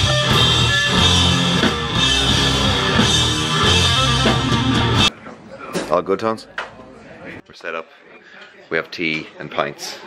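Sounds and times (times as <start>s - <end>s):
rock band playing: 0.0s - 5.1s.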